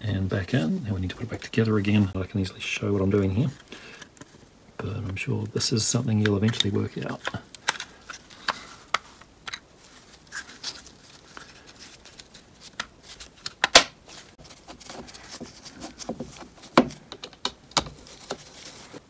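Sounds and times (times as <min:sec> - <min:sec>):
plastic parts knocking: 0:15.4 - 0:18.5.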